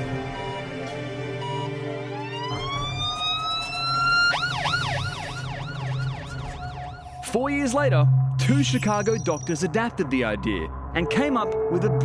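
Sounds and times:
ambulance siren wailing: 0:00.0 - 0:07.4.

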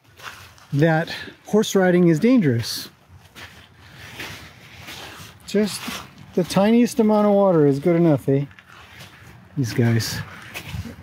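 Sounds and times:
horse scuffing wet gravel: 0:00.0 - 0:01.8, 0:03.1 - 0:11.0
wind noise on microphone: 0:08.8 - 0:11.0.

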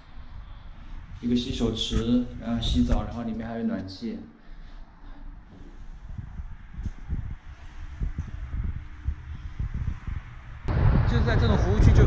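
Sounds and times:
outdoor noise: 0:00.0 - 0:12.0
camera microphone handling rumble: 0:01.0 - 0:03.5, 0:05.5 - 0:11.1
wind on microphone: 0:05.5 - 0:12.0.

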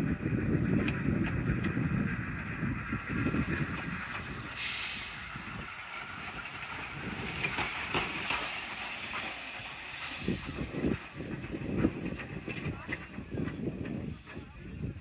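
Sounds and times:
steam locomotive rumble: 0:00.0 - 0:15.0
steam hissing: 0:03.0 - 0:13.3.

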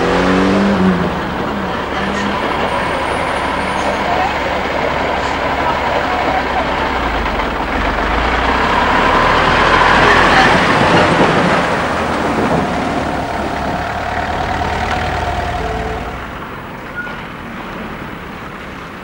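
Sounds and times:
lorry diesel engine rumbling: 0:00.0 - 0:19.0.

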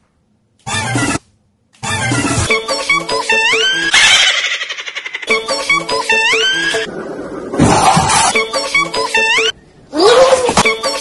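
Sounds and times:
upbeat background music: 0:01.8 - 0:04.1, 0:05.2 - 0:06.9, 0:07.9 - 0:09.5.

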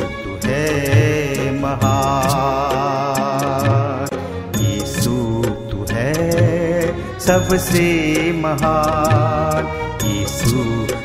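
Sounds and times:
devotional singing: 0:00.0 - 0:11.0
instrumental accompaniment: 0:00.0 - 0:11.0
percussion beat: 0:00.0 - 0:11.0.

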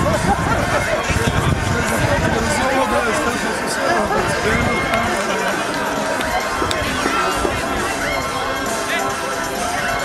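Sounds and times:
indistinct voices calling out: 0:00.0 - 0:10.0
music: 0:00.0 - 0:10.0.

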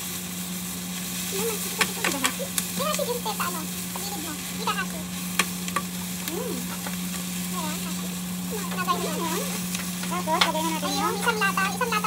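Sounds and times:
steady low hum: 0:00.0 - 0:12.0
vegetables sizzling in a pan: 0:00.0 - 0:12.0.

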